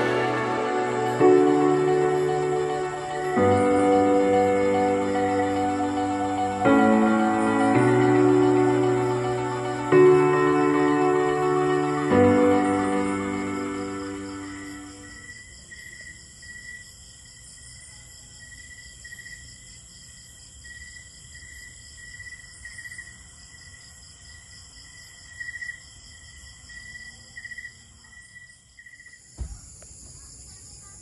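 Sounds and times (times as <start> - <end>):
background music: 0.0 - 15.3
crickets chirping: 0.0 - 31.0
insects droning: 0.0 - 31.0
brief knock: 29.4 - 29.7.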